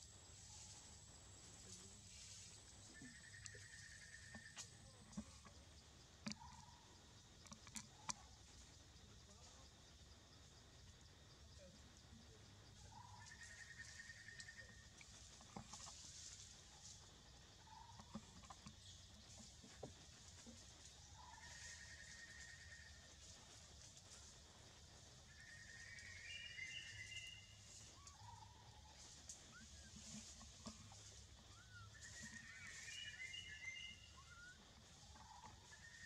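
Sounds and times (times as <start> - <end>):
soft chirps and ticks: 0.0 - 36.0
rough animal trill: 1.8 - 8.4, 12.9 - 23.3, 25.2 - 36.0.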